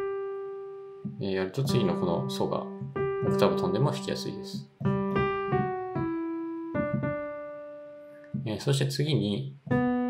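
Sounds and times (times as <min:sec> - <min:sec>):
slow piano melody: 0:00.0 - 0:10.0.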